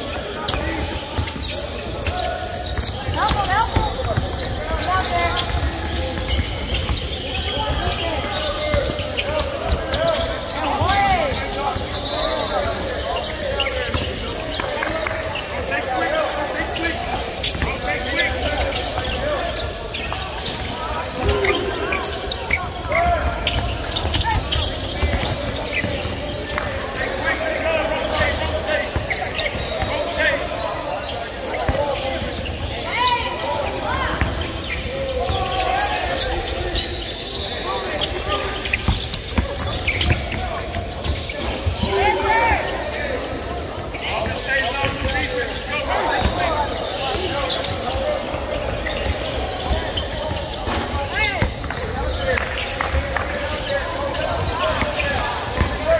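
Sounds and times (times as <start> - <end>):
players calling out: 0.0 - 55.9.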